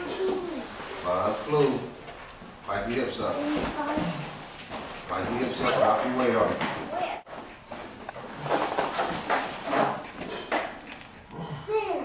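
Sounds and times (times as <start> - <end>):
heavy breathing and grunts: 10.0 - 12.0.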